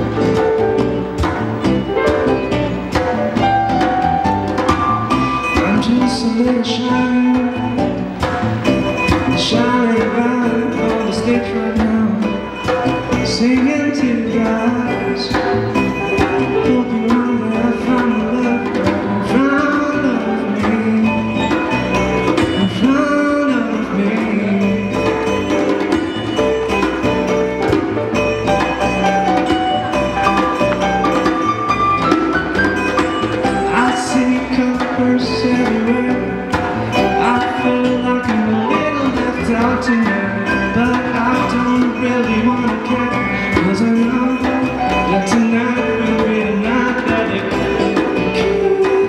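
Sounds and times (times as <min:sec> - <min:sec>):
hand drum: 0:00.0 - 0:49.0
live band playing: 0:00.0 - 0:49.0
man singing: 0:05.4 - 0:08.2, 0:09.1 - 0:25.6, 0:33.5 - 0:49.0.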